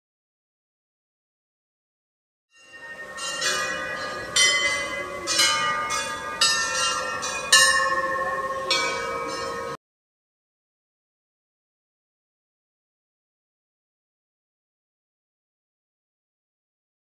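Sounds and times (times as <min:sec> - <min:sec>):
brass bells ringing: 0:02.5 - 0:09.8.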